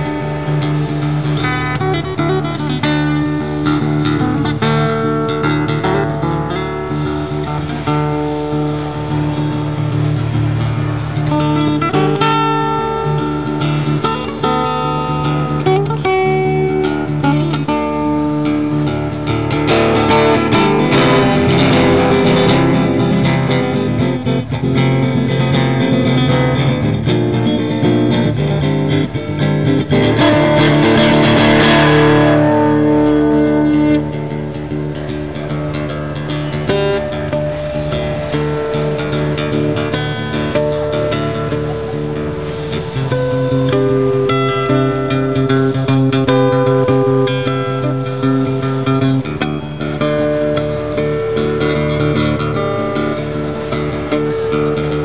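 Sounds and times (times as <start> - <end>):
fingerstyle acoustic guitar: 0.0 - 55.0.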